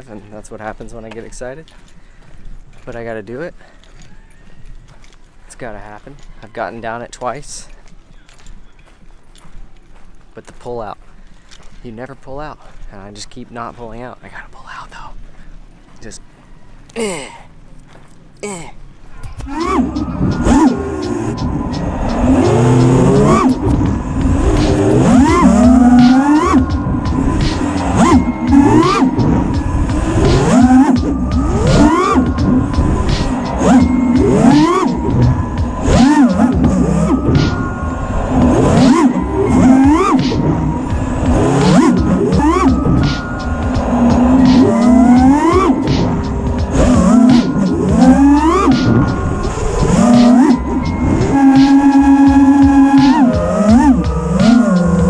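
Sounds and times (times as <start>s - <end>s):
background music: 19.2s - 55.0s
drone motors whining: 19.2s - 55.0s.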